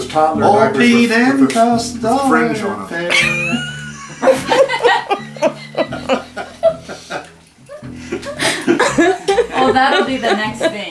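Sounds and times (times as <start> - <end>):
high-pitched laughter bursts: 3.1 - 6.9.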